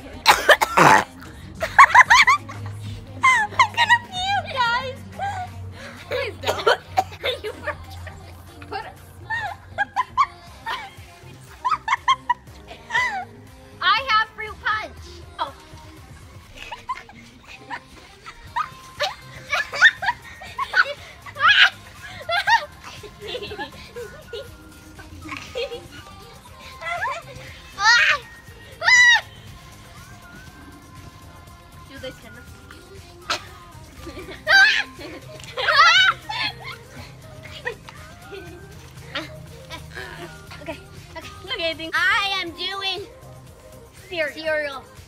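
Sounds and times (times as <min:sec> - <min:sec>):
quiet background music: 0:00.0 - 0:45.0
girl laughing and squealing: 0:03.2 - 0:07.8, 0:09.2 - 0:13.3, 0:16.4 - 0:30.0, 0:33.3 - 0:41.4.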